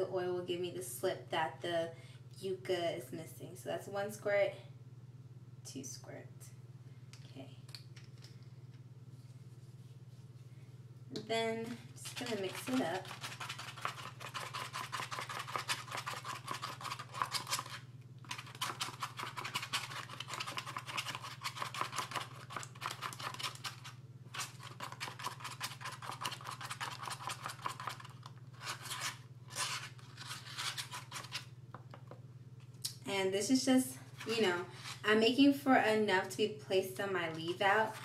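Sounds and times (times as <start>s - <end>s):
spoon scraping styrofoam cup: 12.0s - 31.5s.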